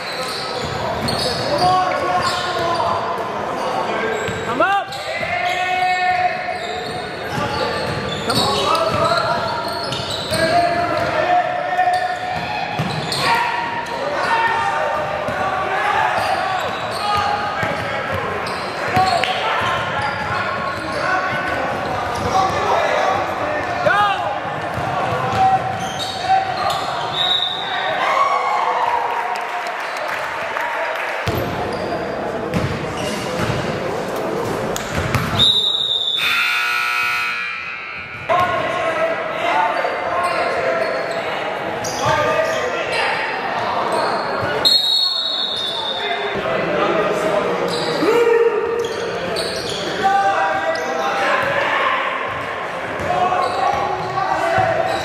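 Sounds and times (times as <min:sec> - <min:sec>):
echoing voices in hall: 0:00.0 - 0:55.0
sharp referee whistle: 0:26.0 - 0:27.8, 0:35.4 - 0:38.0, 0:44.6 - 0:46.1.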